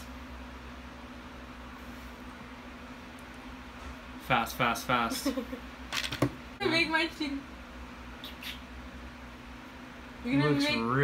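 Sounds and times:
fan electric hum: 0:00.0 - 0:11.0.

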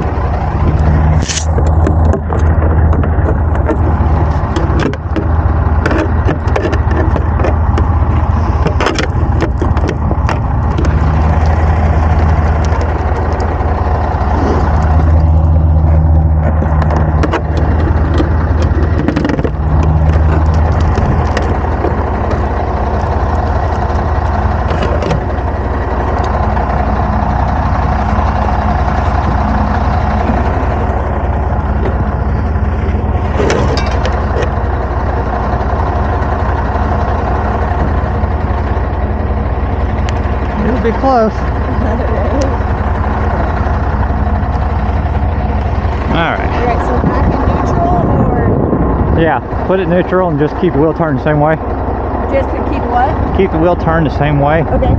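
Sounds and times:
truck diesel engine idling: 0:00.0 - 0:54.9.

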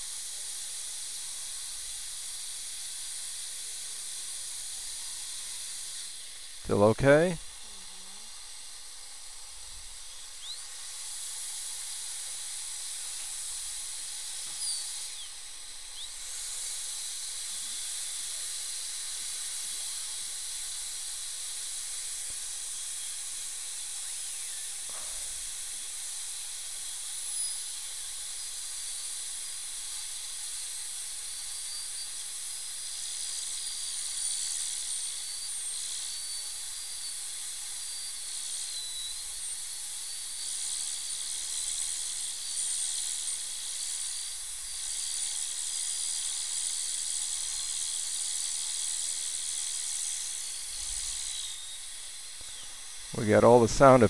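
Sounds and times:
dental drill whine and hiss: 0:00.0 - 0:54.0.

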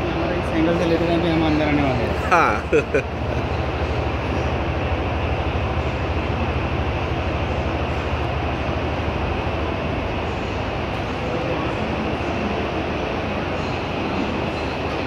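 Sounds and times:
busy exhibition hall din: 0:00.0 - 0:15.0.

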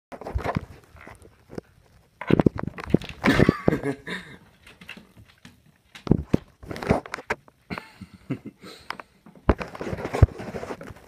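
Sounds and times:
dog moving on hardwood floor: 0:04.5 - 0:07.4.

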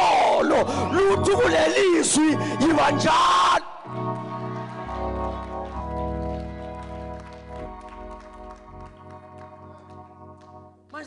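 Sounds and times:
electronic keyboard organ chords: 0:00.0 - 0:11.0.

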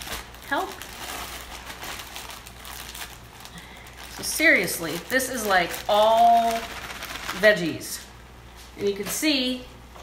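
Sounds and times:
spinach crackling into pot: 0:00.0 - 0:08.0.

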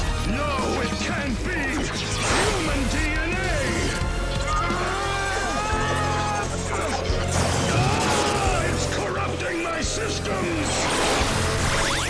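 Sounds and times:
dramatic background music: 0:00.0 - 0:12.0
wordless cries: 0:04.3 - 0:09.2.

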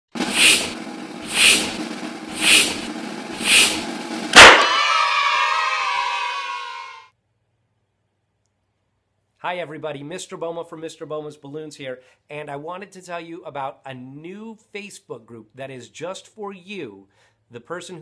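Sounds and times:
balloon pumping whooshes: 0:00.1 - 0:04.6
loud balloon pop: 0:02.4 - 0:04.9.

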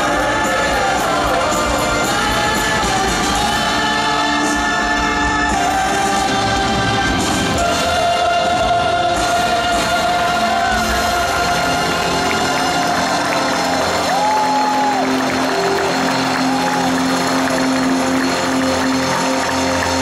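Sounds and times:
crowd cheering: 0:00.0 - 0:20.0
rock band playing: 0:00.0 - 0:20.0
crowd whooping: 0:11.3 - 0:20.0.

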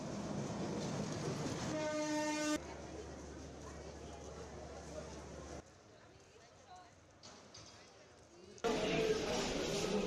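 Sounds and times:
locomotive horn blast: 0:01.7 - 0:02.6.

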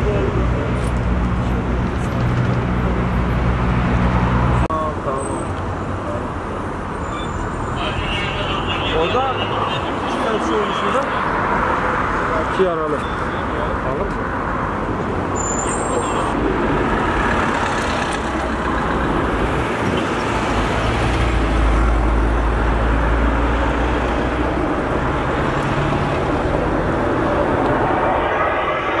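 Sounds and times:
highway traffic passing: 0:00.0 - 0:29.0.

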